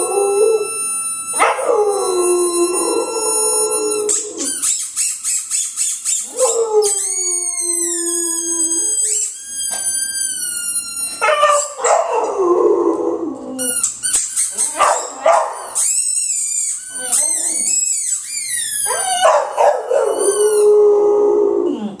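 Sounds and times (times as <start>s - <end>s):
dog howling: 0.0s - 4.6s, 6.3s - 9.2s, 11.2s - 13.8s, 18.8s - 22.0s.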